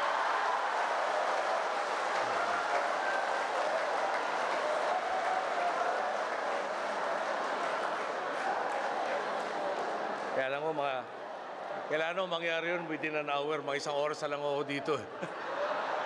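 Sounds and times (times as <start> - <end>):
audience applauding: 0.0 - 10.8
audience laughing: 15.0 - 16.0.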